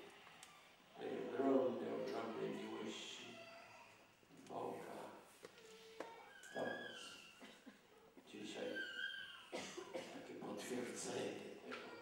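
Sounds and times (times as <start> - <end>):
elderly man speaking softly: 1.0 - 3.4, 4.3 - 5.3, 6.5 - 7.4, 8.2 - 8.9, 10.0 - 12.0.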